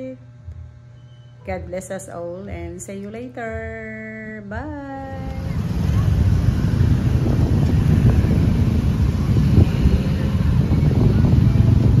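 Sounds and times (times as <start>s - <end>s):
wind buffeting microphone: 5.2s - 12.0s.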